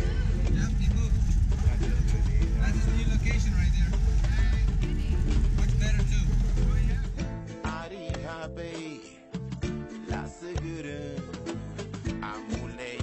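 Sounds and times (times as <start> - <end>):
voice: 0.0 - 7.2
car engine and road rumble: 0.0 - 7.6
music playing: 0.0 - 13.0.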